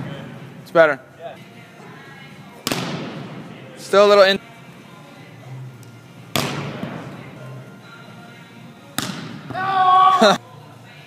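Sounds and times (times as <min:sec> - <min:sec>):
volleyball smacked by hand: 0:02.6 - 0:03.2, 0:06.3 - 0:06.9, 0:09.0 - 0:09.5.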